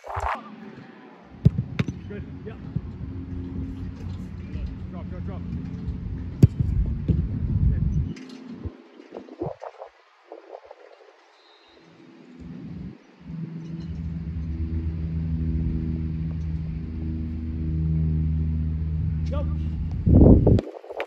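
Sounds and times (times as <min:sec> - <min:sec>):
low engine hum: 0:01.4 - 0:08.7, 0:12.4 - 0:20.9.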